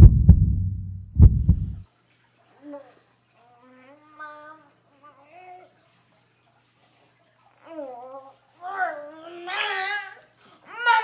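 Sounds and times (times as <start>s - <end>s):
heartbeat thumps: 0.0s - 1.8s.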